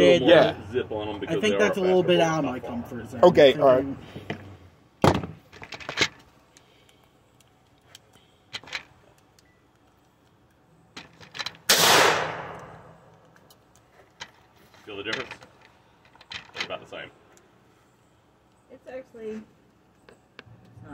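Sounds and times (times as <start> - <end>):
gunshots with echo: 11.7 - 12.6.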